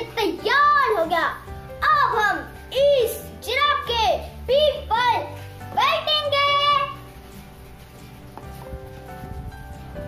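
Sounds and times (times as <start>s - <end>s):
boy speaking: 0.0s - 7.0s
light background music: 0.0s - 10.0s.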